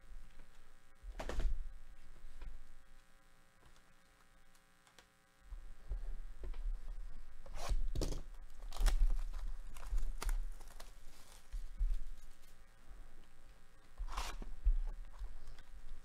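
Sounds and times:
wrapper ripping: 7.6s - 11.5s.

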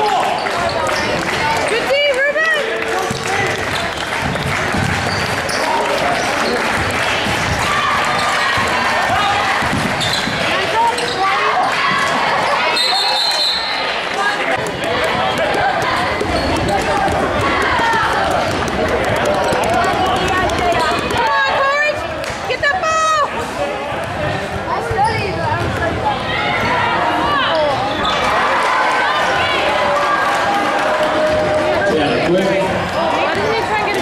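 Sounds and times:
voices and shouts: 0.0s - 4.2s, 5.0s - 34.0s
sneakers squeaking: 3.1s - 6.6s, 9.6s - 13.9s, 14.6s - 21.7s, 24.8s - 25.8s, 27.5s - 28.3s
ball dribbling on hardwood: 14.6s - 21.5s.

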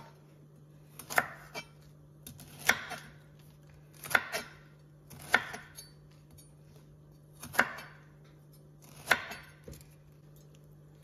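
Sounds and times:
knife cutting on wooden board: 1.0s - 3.2s.

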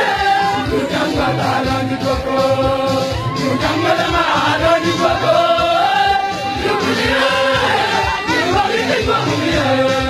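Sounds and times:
choir singing church music: 0.0s - 10.0s.

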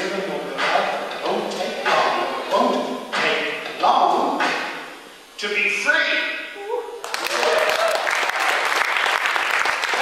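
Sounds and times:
man speaking into microphone: 5.4s - 6.4s.

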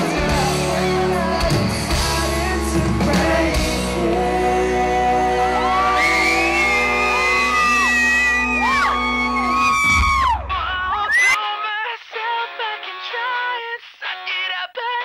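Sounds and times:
singer holding long notes: 0.0s - 11.7s
live pop-rock band playing: 0.0s - 14.3s
audience whooping and shouting: 5.3s - 11.4s.

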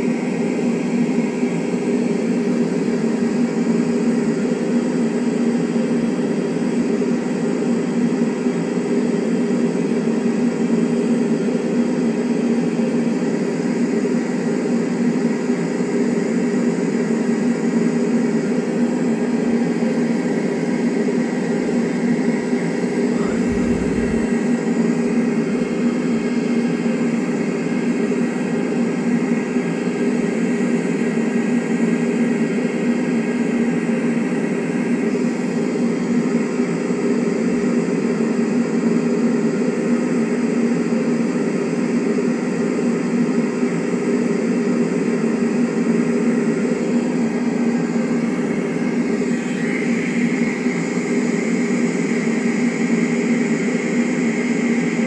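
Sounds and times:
loud steady mechanical drone: 0.0s - 55.0s
rushing noise: 23.1s - 26.0s.

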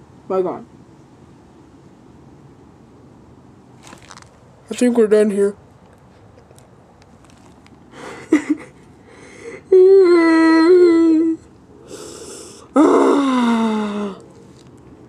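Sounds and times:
man moaning: 9.6s - 11.4s, 12.6s - 14.2s.

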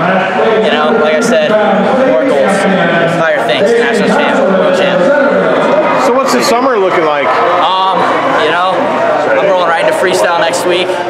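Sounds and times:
man talking: 0.0s - 11.0s.

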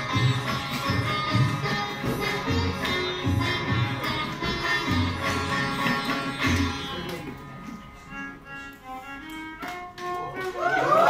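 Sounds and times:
tabla strokes: 0.0s - 7.9s
sitar and violin: 0.0s - 11.0s.

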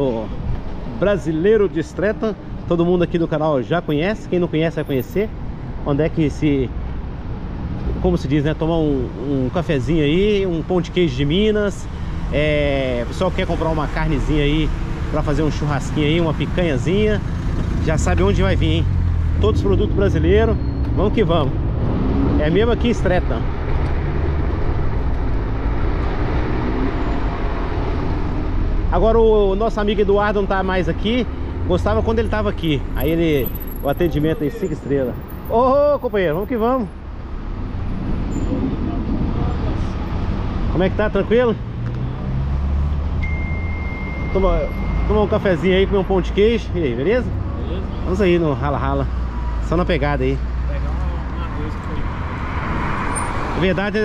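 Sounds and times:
low traffic rumble: 0.0s - 54.0s
wind noise on microphone: 37.8s - 40.7s.

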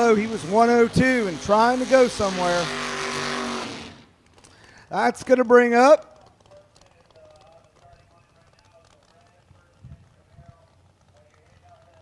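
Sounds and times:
commentator speaking: 0.0s - 2.7s, 4.9s - 12.0s
distant race car engines: 0.0s - 12.0s.

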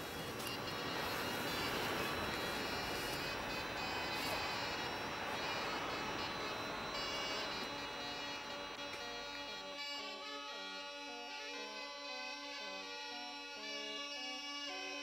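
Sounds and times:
city street traffic hiss: 0.0s - 15.0s
faint music of held tones: 0.0s - 15.0s.

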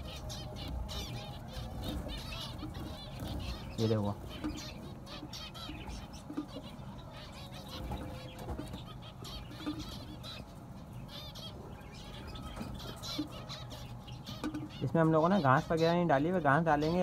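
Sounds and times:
finches calling: 0.0s - 17.0s.

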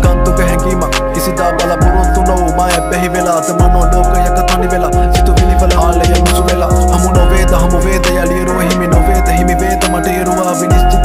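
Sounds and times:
deep sliding bass: 0.0s - 10.2s
hip-hop song with vocals: 0.0s - 11.0s.

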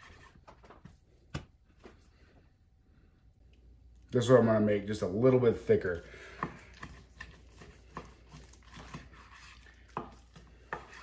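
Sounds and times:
knife slicing through meat: 6.0s - 11.0s.

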